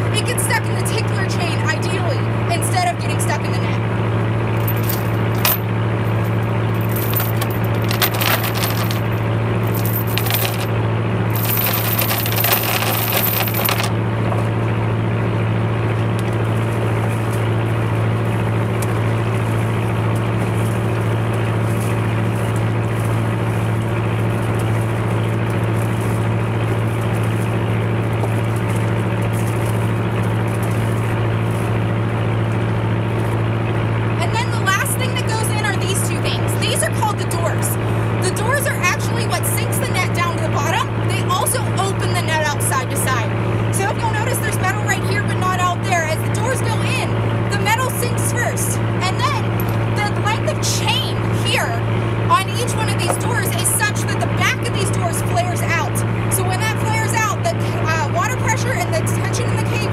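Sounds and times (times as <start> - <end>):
boat engine droning: 0.0 - 59.9.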